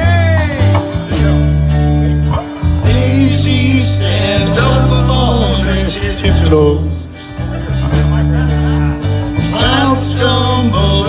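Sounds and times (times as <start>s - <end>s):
bass guitar notes: 0.0s - 11.0s
electric guitar notes: 0.0s - 11.0s.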